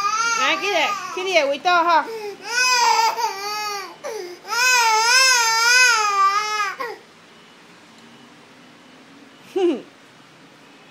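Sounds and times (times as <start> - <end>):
toddler crying: 0.0 - 1.3, 2.4 - 7.0.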